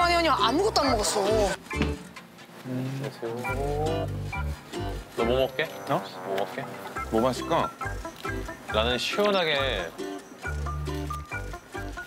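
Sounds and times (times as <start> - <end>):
background music with bass: 3.5 - 5.6.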